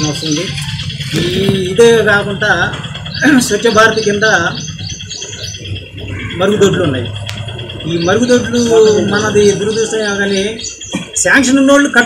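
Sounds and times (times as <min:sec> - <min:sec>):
man speaking: 0:00.0 - 0:04.6, 0:06.3 - 0:07.2, 0:07.8 - 0:12.0
birds chirping: 0:00.0 - 0:12.0.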